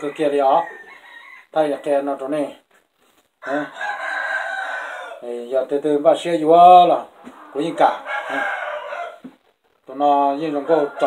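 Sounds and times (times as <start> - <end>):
rooster crowing: 0.0 - 1.6, 3.4 - 5.2, 7.4 - 9.3, 10.5 - 11.0.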